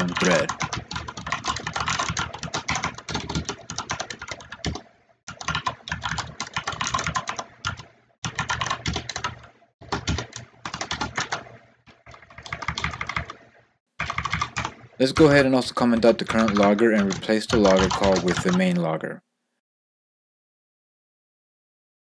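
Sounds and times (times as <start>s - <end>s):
computer keyboard typing: 0.0s - 18.9s.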